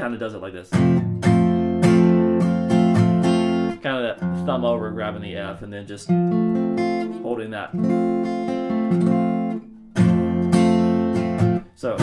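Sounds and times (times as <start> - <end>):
acoustic guitar strumming: 0.7 - 12.0.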